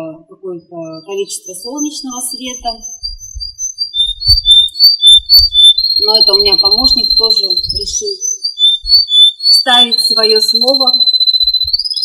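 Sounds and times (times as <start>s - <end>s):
bird singing whistled notes: 0.9s - 12.0s.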